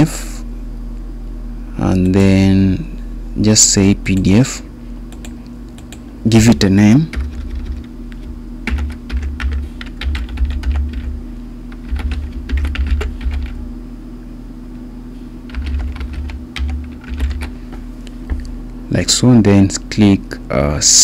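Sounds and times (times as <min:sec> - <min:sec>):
typing on computer keyboard: 0:07.1 - 0:07.9, 0:08.7 - 0:11.1, 0:11.7 - 0:13.6, 0:15.5 - 0:17.6.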